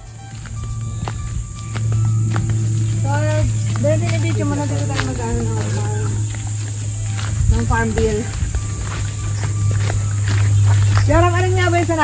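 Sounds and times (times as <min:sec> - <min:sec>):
footsteps through undergrowth: 0:00.0 - 0:12.0
low hum: 0:00.0 - 0:12.0.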